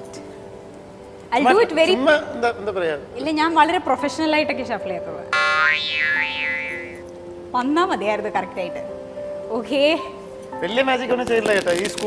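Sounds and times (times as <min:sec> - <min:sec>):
light background music: 0:00.0 - 0:12.0
wavering comic tone: 0:05.4 - 0:07.0.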